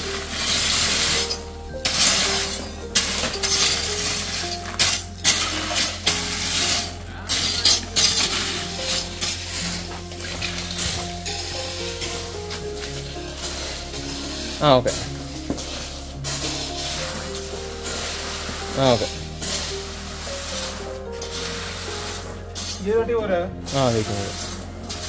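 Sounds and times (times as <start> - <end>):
rake scraping gravel: 0.0 - 25.0.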